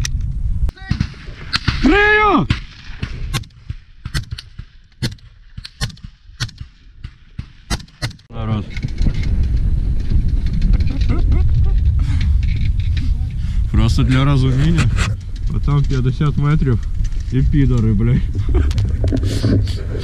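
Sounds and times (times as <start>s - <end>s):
wind buffeting microphone: 0.0s - 5.3s, 7.4s - 20.0s
sharp gunshots: 0.7s - 8.3s.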